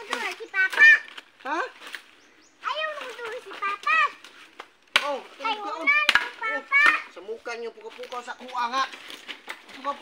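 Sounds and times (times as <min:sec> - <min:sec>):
machete chopping wood: 0:00.0 - 0:01.0, 0:04.6 - 0:07.2.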